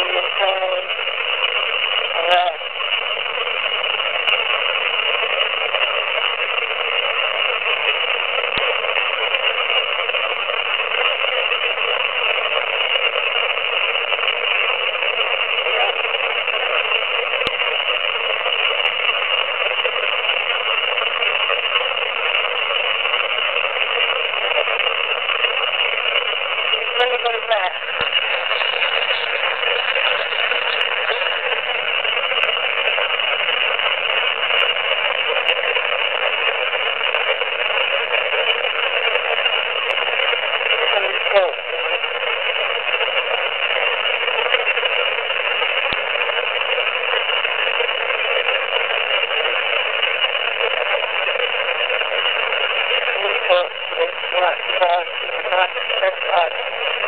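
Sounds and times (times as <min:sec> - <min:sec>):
radio static hiss: 0:00.0 - 0:57.0.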